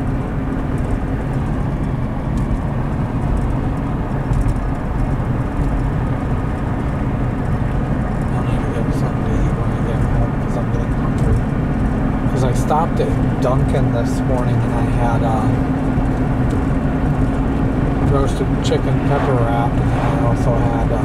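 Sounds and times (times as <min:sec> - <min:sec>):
car cabin low rumble: 0:00.0 - 0:21.0.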